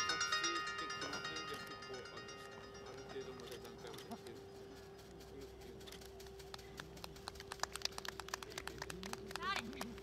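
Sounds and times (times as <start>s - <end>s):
audience clapping: 6.5s - 10.0s.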